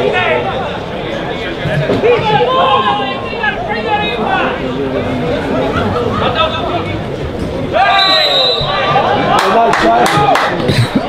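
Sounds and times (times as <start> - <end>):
football crowd murmur: 0.0 - 11.0
loud shouted call: 7.7 - 10.5.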